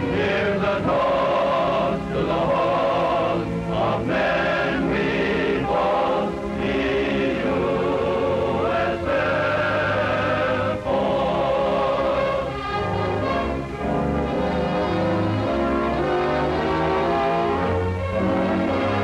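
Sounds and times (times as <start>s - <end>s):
choir singing held chords: 0.0s - 19.0s
orchestral accompaniment: 0.0s - 19.0s.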